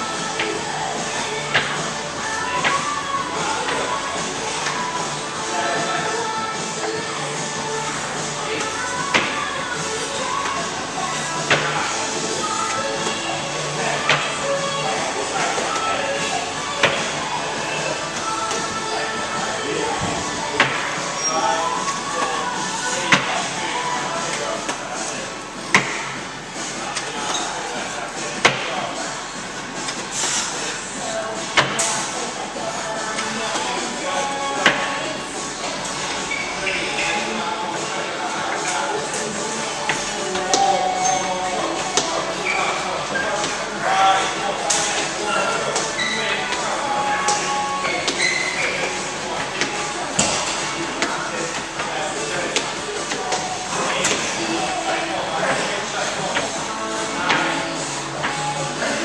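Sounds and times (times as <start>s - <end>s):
background music: 0.0s - 59.0s
voices in echoing room: 30.1s - 59.0s.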